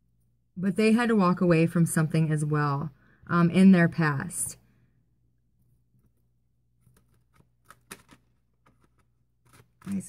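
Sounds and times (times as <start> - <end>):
cards being shuffled: 6.8 - 10.0.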